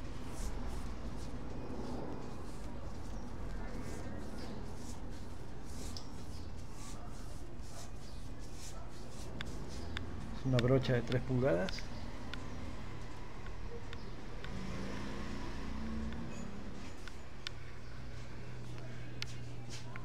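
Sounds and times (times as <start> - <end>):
paintbrush swishing on wood: 0.0 - 11.8.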